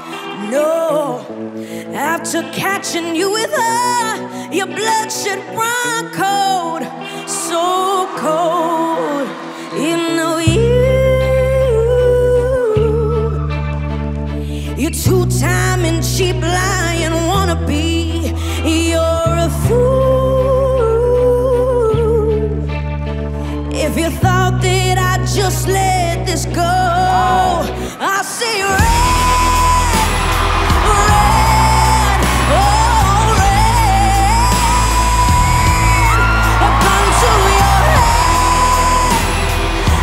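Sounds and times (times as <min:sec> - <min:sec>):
girl singing with vibrato: 0:00.0 - 0:13.6, 0:14.7 - 0:22.7, 0:23.7 - 0:40.0
woman singing high held notes: 0:28.4 - 0:40.0
backing music with heavy bass: 0:28.8 - 0:40.0.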